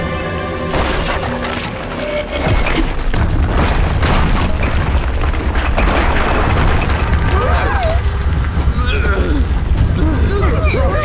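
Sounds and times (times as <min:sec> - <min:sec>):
deep rumble: 0:00.0 - 0:11.0
dramatic film music: 0:00.0 - 0:11.0
rocks tumbling and crashing: 0:00.0 - 0:11.0.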